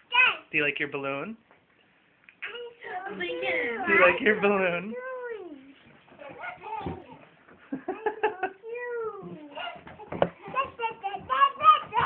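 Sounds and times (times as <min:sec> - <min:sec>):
soft bump: 0:09.3 - 0:12.0.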